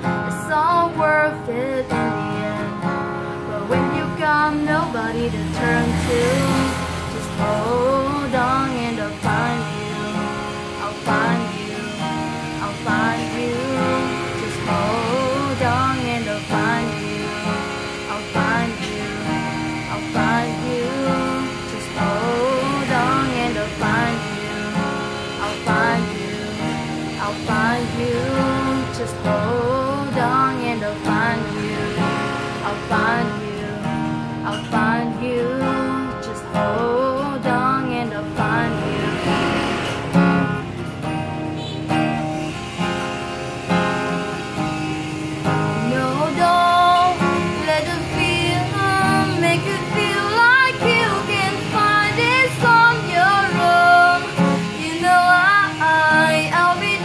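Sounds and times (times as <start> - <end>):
woman singing: 0.0 - 41.2, 43.6 - 57.0
acoustic guitar strummed and picked: 0.0 - 57.0.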